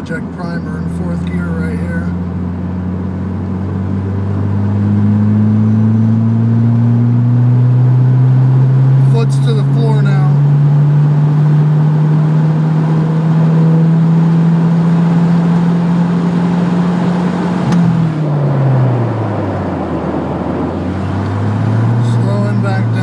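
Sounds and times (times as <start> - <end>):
car engine at full throttle: 0.0 - 23.0.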